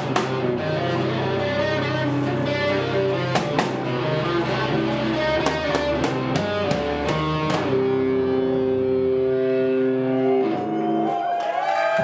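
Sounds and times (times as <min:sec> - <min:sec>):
drum kit: 0:00.0 - 0:08.4
rock band playing loud: 0:00.0 - 0:11.2.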